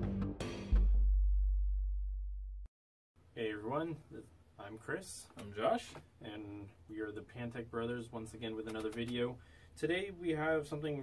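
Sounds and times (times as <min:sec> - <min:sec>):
deep synthesized bass tone: 0:00.0 - 0:02.7.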